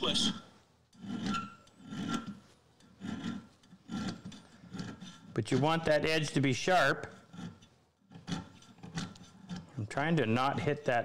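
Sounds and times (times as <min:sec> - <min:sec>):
file rasping on steel: 0:00.9 - 0:10.2.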